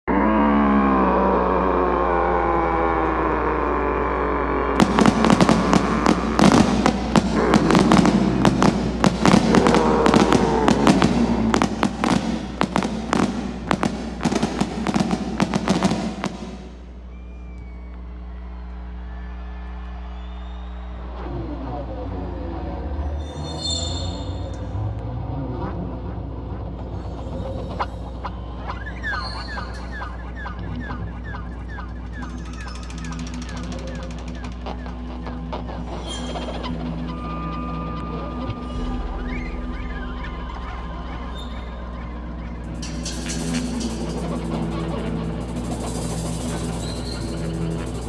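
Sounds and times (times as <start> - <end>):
fireworks bangs and crackles: 4.8 - 17.1, 38.0 - 48.0
music: 4.8 - 17.7, 26.4 - 48.0.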